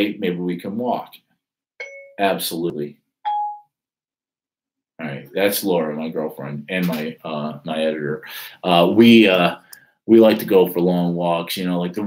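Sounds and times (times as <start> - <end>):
phone chime: 1.8 - 2.3, 3.3 - 3.8.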